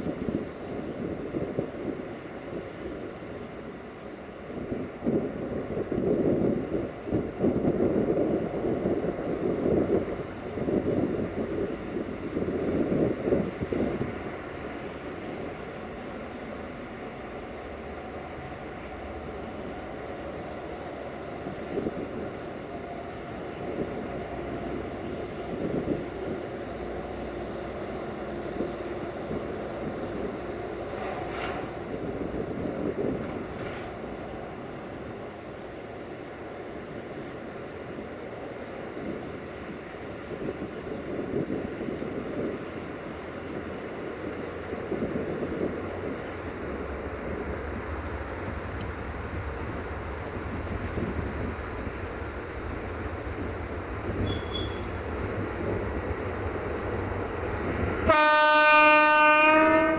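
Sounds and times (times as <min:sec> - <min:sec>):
freight train diesel rumble: 0:00.0 - 0:59.9
wind buffeting microphone: 0:00.0 - 0:59.9.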